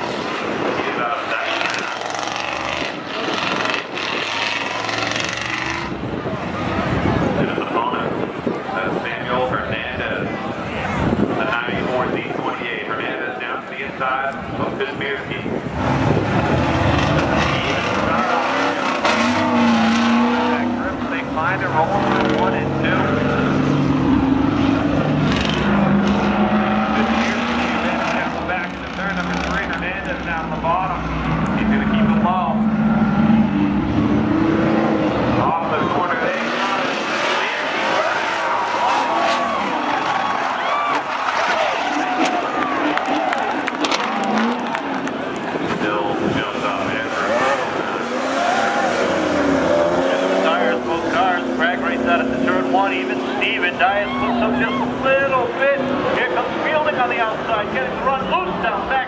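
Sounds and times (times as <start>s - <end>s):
car engines revving: 0.0s - 59.0s
tire squeal: 36.4s - 45.0s, 47.2s - 50.7s, 54.0s - 55.2s.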